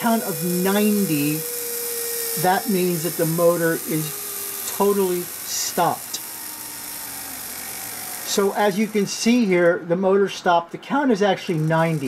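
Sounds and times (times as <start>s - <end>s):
small gear motor whirring: 0.0s - 12.0s.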